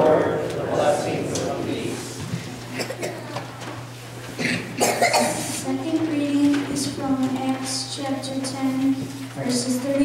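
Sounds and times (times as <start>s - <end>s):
person coughing: 2.7s - 3.4s, 4.4s - 5.6s.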